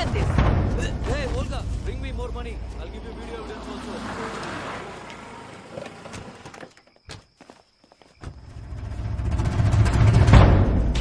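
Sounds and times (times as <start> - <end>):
percussive film score: 0.0 - 2.3
deep rumble: 0.0 - 5.5, 8.4 - 11.0
footsteps: 0.0 - 8.5.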